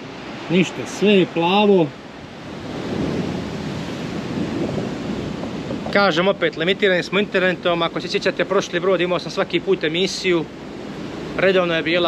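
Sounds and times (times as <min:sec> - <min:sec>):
wind buffeting microphone: 0:00.0 - 0:08.7.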